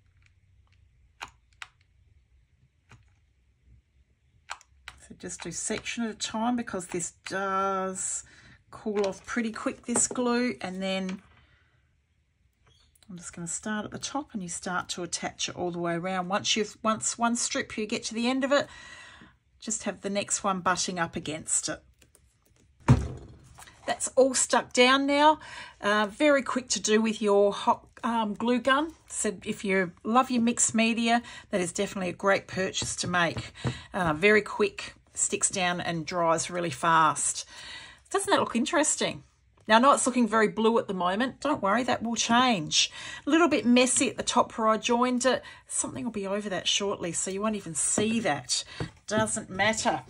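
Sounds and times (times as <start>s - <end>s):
dull thump of wooden hoop: 22.9s - 23.5s.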